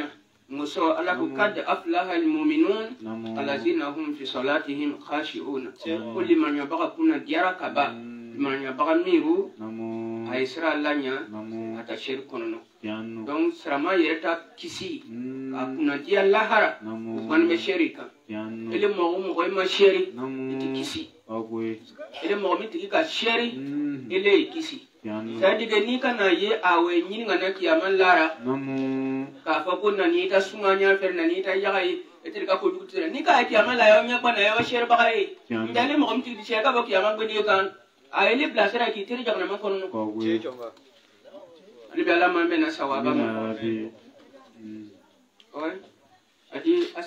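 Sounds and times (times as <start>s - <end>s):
man chanting into a microphone: 0.0s - 36.5s.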